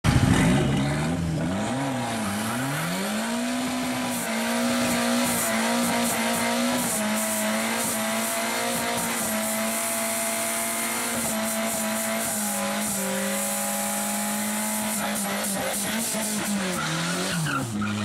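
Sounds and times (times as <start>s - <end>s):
car engine revving: 0.0s - 18.0s.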